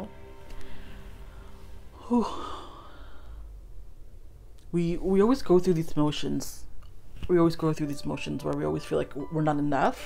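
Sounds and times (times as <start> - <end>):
woman exhaling whew: 2.0 - 3.5.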